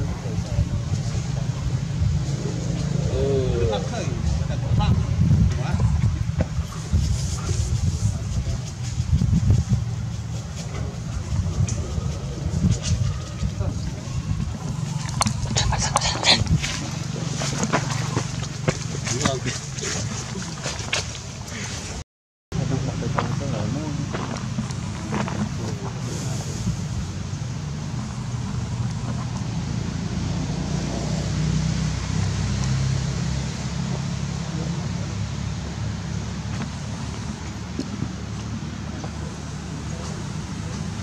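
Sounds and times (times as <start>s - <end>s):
wind buffeting microphone: 0.0s - 21.6s, 23.0s - 34.0s
faint voices: 0.0s - 22.0s, 22.6s - 29.6s, 33.6s - 41.0s
microphone handling noise: 4.2s - 19.0s.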